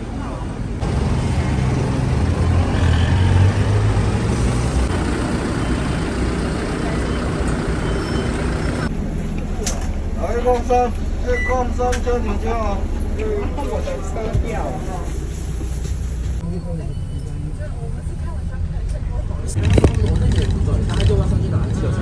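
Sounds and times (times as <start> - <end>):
minibus engine idling: 0.1 - 16.4
people's voices: 5.0 - 22.0.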